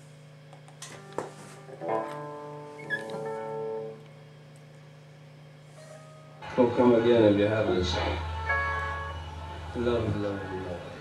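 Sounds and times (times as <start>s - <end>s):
guitar amplifier humming: 0.0s - 11.0s
electric guitar note: 5.8s - 11.0s.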